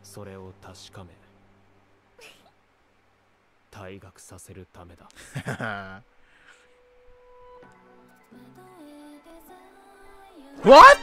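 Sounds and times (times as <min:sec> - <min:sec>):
low electrical hum: 0:00.0 - 0:07.5
faint voice: 0:10.6 - 0:11.0.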